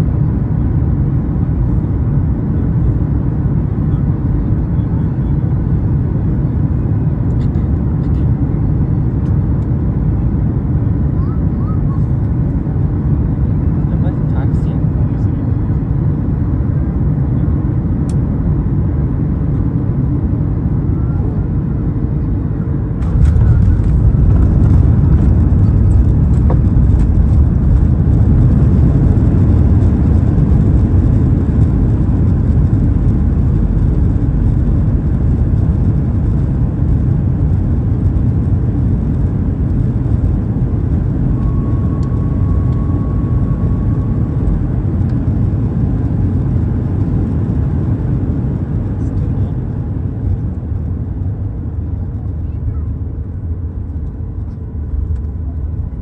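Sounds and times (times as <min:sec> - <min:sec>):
aircraft cabin rumble: 0:00.0 - 0:56.0
jet rollout roar: 0:15.5 - 0:52.2.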